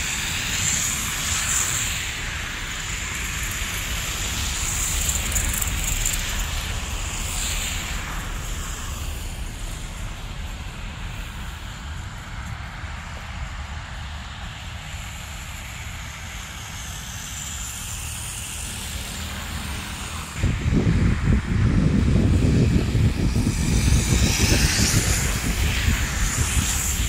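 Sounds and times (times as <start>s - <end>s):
wind buffeting microphone: 0.0s - 18.3s, 20.4s - 27.0s.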